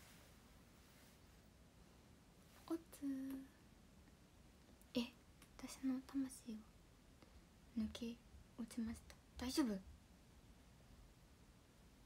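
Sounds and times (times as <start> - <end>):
woman speaking: 2.6 - 3.6, 5.0 - 6.6, 7.8 - 9.9.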